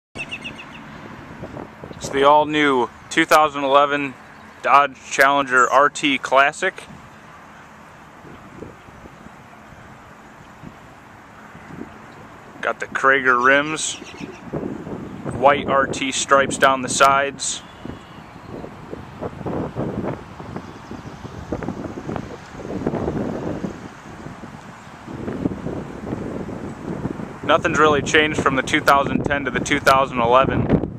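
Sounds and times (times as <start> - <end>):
bird chirping: 0.2 - 1.0, 4.2 - 4.7, 13.8 - 15.4, 17.6 - 18.8
outdoor background noise: 0.2 - 30.2
wind buffeting microphone: 0.2 - 30.9.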